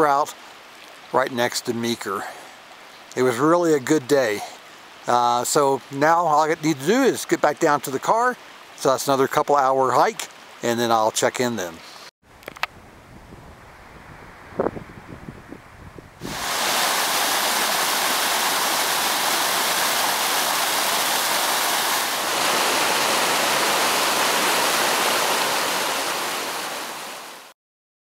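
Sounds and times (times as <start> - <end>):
stream rushing over rocks: 16.2 - 27.5.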